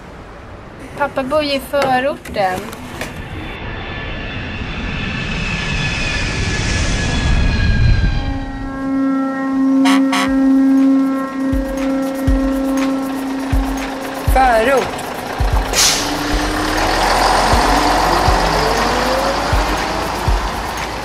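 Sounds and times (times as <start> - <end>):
train rumbling rush: 0.0 - 21.0
steady humming tone: 2.8 - 21.0
low thumps: 10.2 - 20.8.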